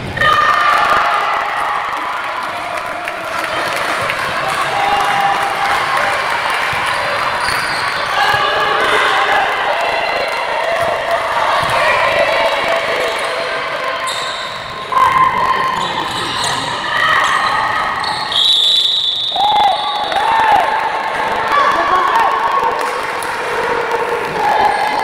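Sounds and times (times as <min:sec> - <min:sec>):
players shouting: 0:00.0 - 0:25.0.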